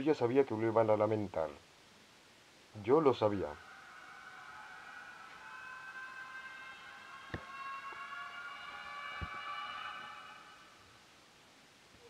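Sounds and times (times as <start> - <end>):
eerie high-pitched drone: 3.2 - 11.1.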